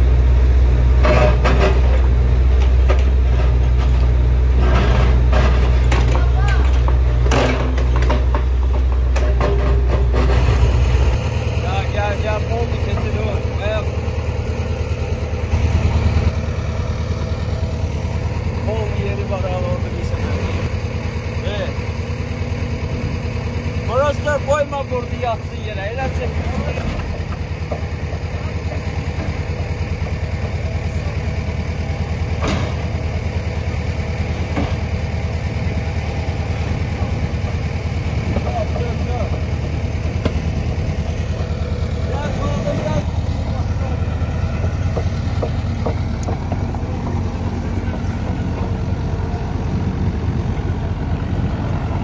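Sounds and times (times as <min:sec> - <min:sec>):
diesel engine droning: 0:00.0 - 0:52.0.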